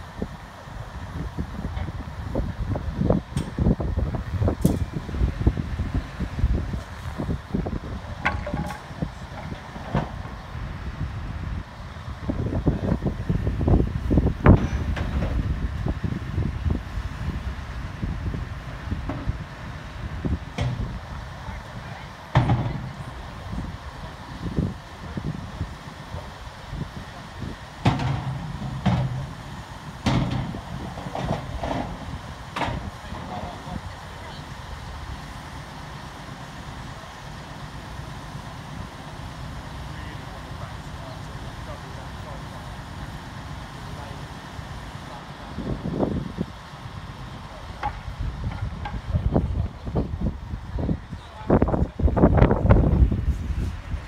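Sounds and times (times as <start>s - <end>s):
crane diesel engine running: 0.0s - 54.0s
workers' voices: 0.4s - 10.6s, 18.4s - 54.0s.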